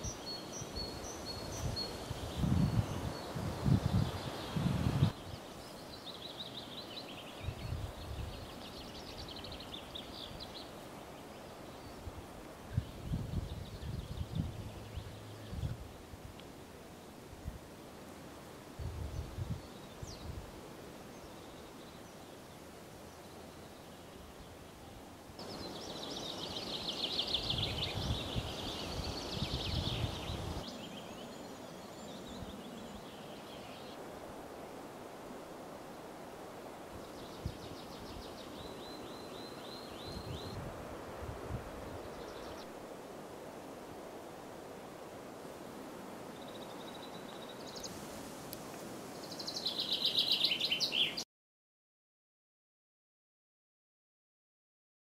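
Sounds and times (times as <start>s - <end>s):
wind hiss: 0.0s - 51.2s
wind buffeting microphone: 1.3s - 5.4s, 12.7s - 16.0s, 18.8s - 20.5s, 27.3s - 30.7s, 40.0s - 42.6s
songbirds trilling: 49.1s - 51.2s.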